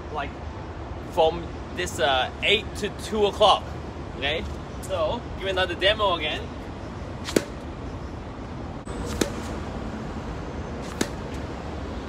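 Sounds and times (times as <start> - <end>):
racket hitting tennis ball: 7.2 - 7.7, 8.9 - 9.6, 10.8 - 11.5
faint ball impact: 9.1 - 9.5, 10.8 - 11.4.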